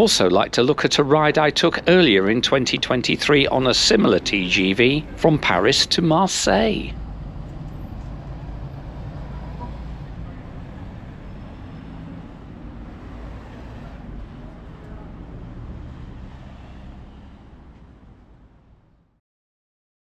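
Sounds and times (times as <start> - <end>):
bus engine running: 0.0 - 19.1
vehicles passing: 0.0 - 19.2.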